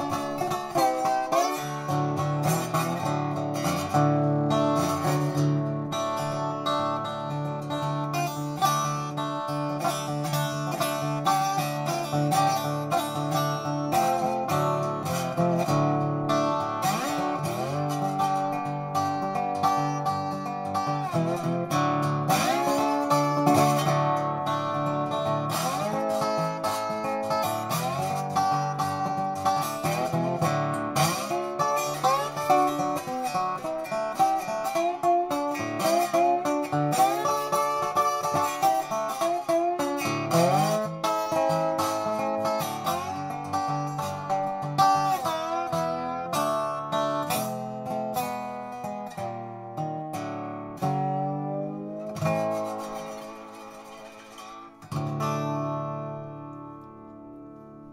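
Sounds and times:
resonator guitar fingerpicked with slide: 0.0 - 57.9.

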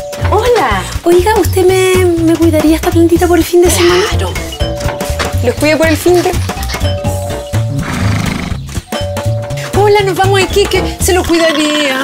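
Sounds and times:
background music with bass beat: 0.0 - 11.6
horse whinnying: 7.7 - 8.6.

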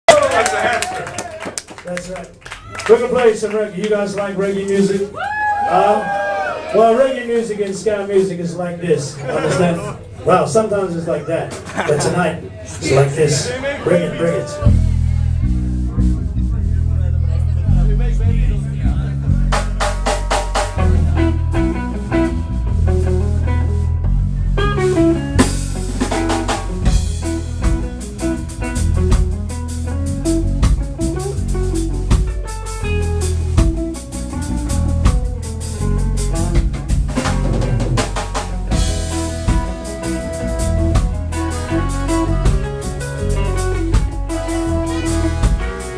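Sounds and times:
ska band playing: 0.1 - 45.9
horns playing: 38.8 - 45.9.

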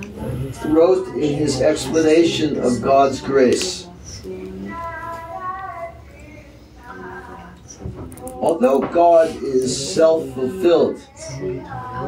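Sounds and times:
high voice singing devotional music: 0.0 - 12.0.

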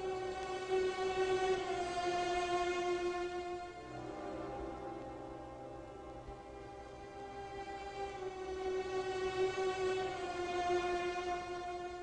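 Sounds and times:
orchestra holding a chord: 3.3 - 10.5.

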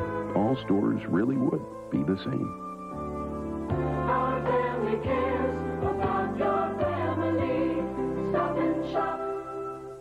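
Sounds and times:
instrumental backing: 0.0 - 10.0
choir singing a jingle: 3.7 - 10.0.

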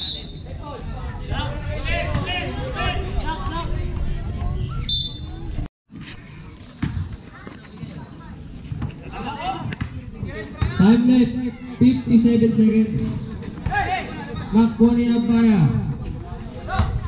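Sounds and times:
people chattering: 0.0 - 17.0
basketball bouncing on concrete: 6.7 - 7.4.

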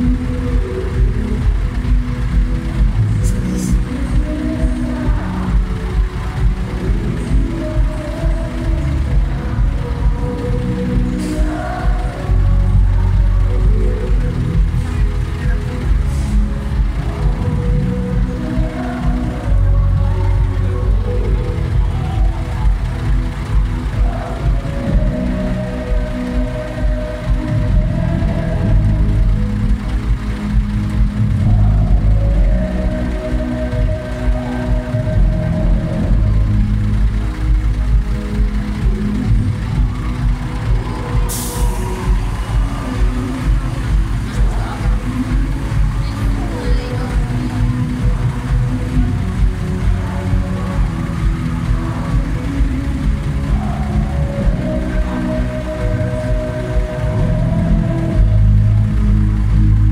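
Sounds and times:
live band with boomy bass: 0.0 - 59.9.

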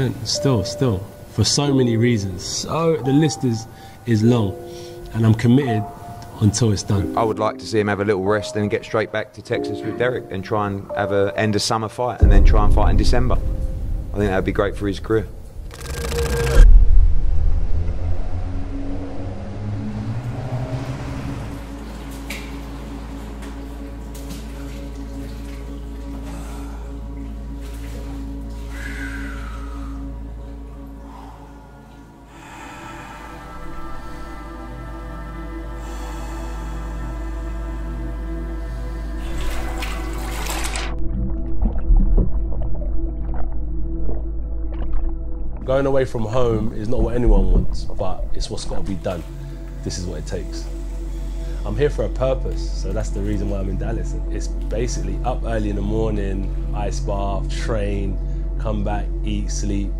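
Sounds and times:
rush of noise into deep boom: 12.2 - 15.7, 16.3 - 21.7
low bump: 12.2 - 22.6
water sloshing and trickling: 12.2 - 58.6
low rumbling drone: 12.2 - 59.9
rising whoosh: 12.3 - 22.5.

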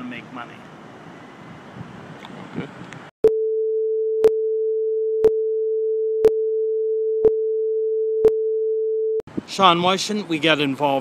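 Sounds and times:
street noise: 0.0 - 3.1, 9.3 - 11.0.

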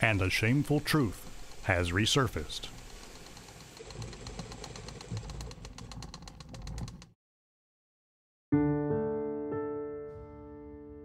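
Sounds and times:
film projector clattering: 0.0 - 7.2.

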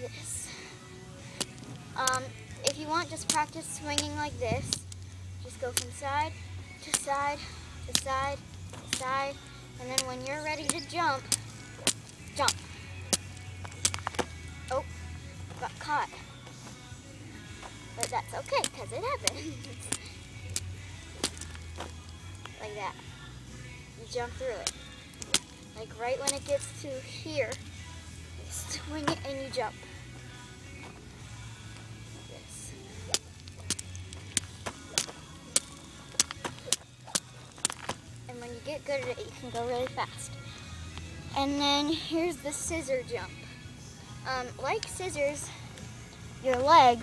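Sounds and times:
jump rope slapping ground: 10.0 - 14.3, 25.2 - 25.6, 33.1 - 38.0.

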